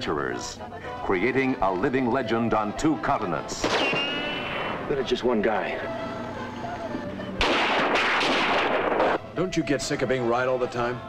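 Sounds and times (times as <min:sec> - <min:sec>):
barrage of gunfire: 0:03.6 - 0:04.8, 0:07.4 - 0:09.2.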